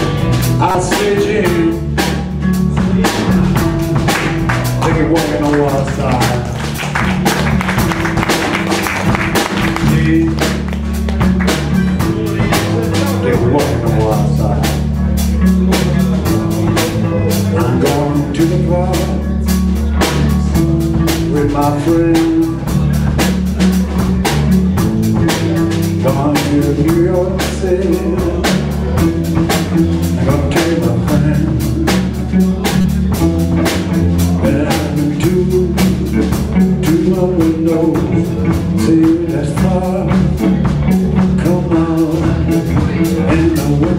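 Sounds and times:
bass guitar: 0:00.0 - 0:43.9
drum kit steady beat: 0:00.0 - 0:43.9.

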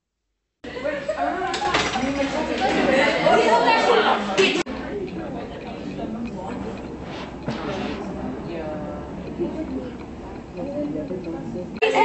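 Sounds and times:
crowd chattering: 0:00.6 - 0:12.0.

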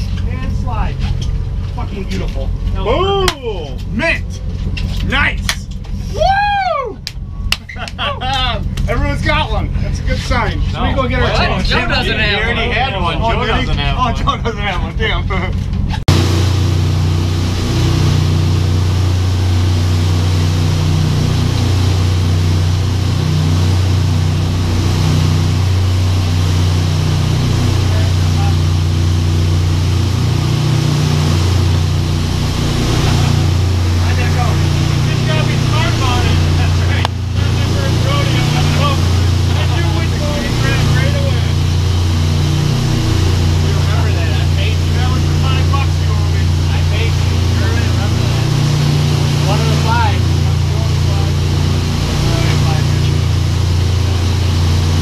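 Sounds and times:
boat engines droning: 0:00.0 - 0:55.0
wind and water rushing: 0:16.1 - 0:55.0.

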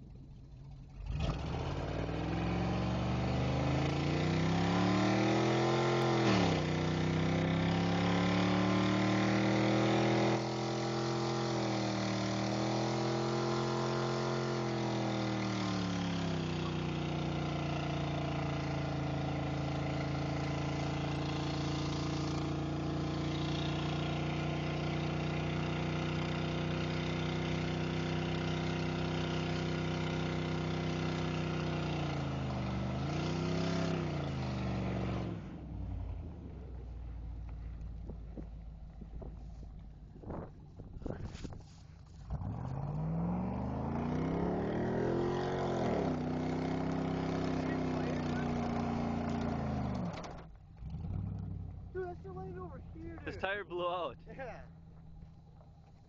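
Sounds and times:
truck engine revving: 0:00.8 - 0:41.5, 0:42.1 - 0:56.0.

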